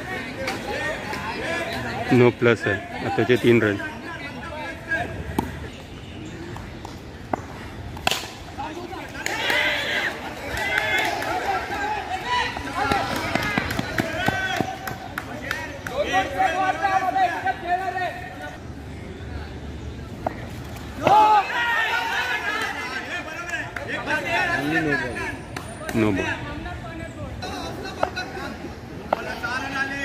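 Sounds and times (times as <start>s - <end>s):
men calling out and chattering: 0.0s - 30.0s.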